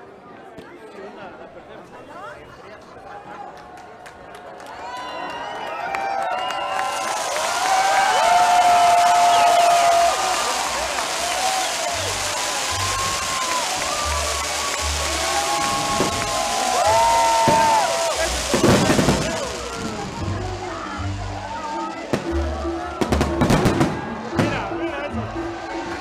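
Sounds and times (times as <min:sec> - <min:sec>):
fireworks crackling: 0:06.7 - 0:25.1.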